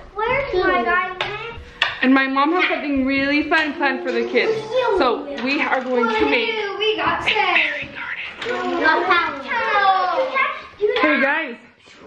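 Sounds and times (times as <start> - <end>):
children playing: 0.0 - 12.0
child talking in a high voice: 0.2 - 1.7, 4.0 - 11.4
woman speaking: 2.0 - 6.6, 7.2 - 8.4, 11.0 - 11.7.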